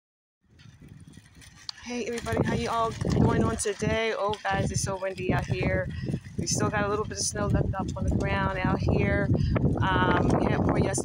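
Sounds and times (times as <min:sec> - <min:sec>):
wind buffeting microphone: 0:00.4 - 0:11.0
person speaking: 0:01.7 - 0:11.0.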